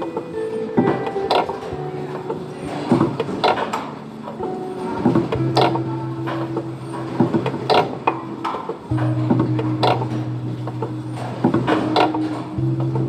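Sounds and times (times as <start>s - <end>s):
mechanical clacks and knocks: 0.0s - 13.0s.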